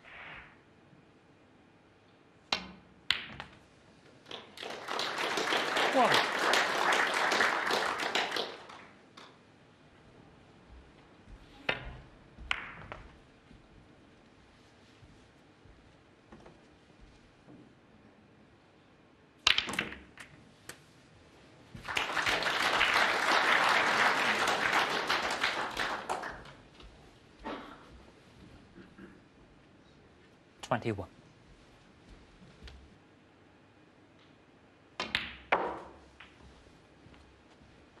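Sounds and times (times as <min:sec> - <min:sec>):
snooker balls clicking: 0:11.8 - 0:13.2, 0:19.4 - 0:20.8, 0:35.0 - 0:36.4
cue tip striking ball: 0:35.0 - 0:36.0.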